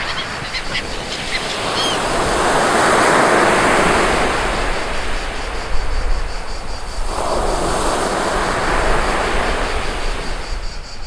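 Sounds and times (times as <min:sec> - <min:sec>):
sea waves washing onto shore: 0:00.0 - 0:10.8
wind rumbling on microphone: 0:00.0 - 0:11.0.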